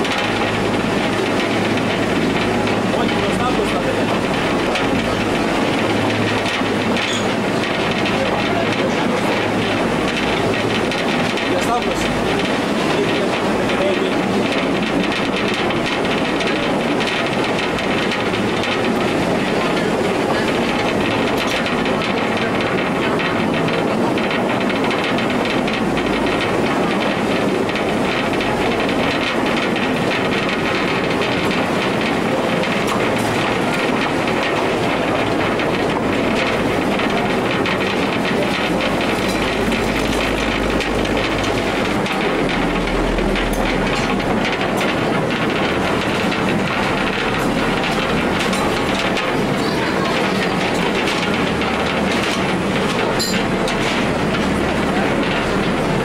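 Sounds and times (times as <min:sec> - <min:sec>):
mine train rumbling on track: 0:00.0 - 0:56.0.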